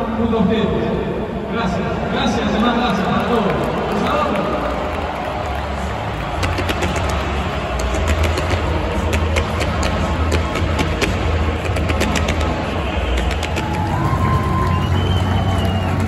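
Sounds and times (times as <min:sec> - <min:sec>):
crowd noise: 0:00.0 - 0:16.0
music over public-address system: 0:00.0 - 0:16.0.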